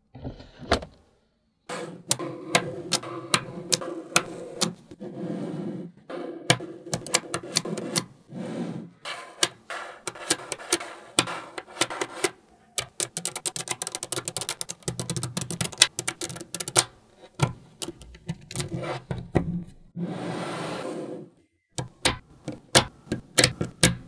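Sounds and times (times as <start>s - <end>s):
magnetic balls clicking together: 2.0s - 4.8s, 6.5s - 8.1s, 9.4s - 18.7s, 21.8s - 24.0s.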